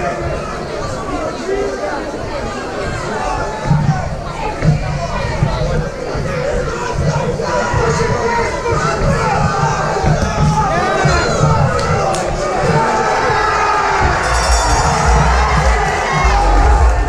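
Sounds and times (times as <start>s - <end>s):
crowd cheering and shouting: 0.0s - 17.0s
low rumble: 14.3s - 17.0s.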